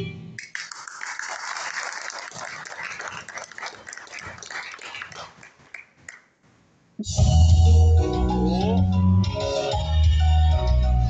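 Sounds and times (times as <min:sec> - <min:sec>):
audience applause and cheering: 0:00.4 - 0:06.2
backing music: 0:07.0 - 0:11.0.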